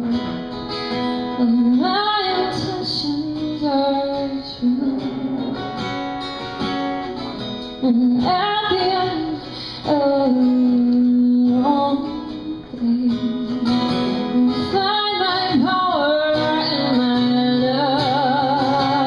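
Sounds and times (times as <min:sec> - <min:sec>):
woman singing: 0:00.0 - 0:06.2, 0:07.2 - 0:19.0
acoustic guitar: 0:00.0 - 0:19.0.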